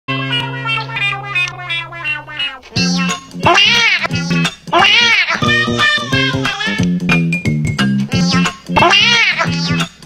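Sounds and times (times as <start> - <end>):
music with steady bass line: 2.8 - 4.8, 5.4 - 10.0
cat meowing loudly: 3.5 - 4.1, 4.8 - 6.8, 8.8 - 9.5.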